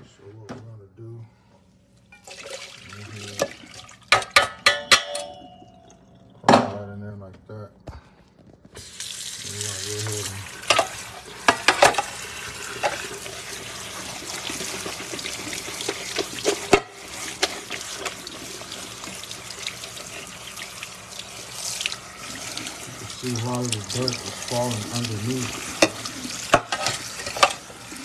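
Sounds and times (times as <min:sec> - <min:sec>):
metal pot clanking: 0:03.4 - 0:06.8, 0:10.6 - 0:13.2, 0:14.4 - 0:18.8, 0:25.5 - 0:27.7
tap water splashing: 0:10.0 - 0:13.2, 0:14.2 - 0:27.6.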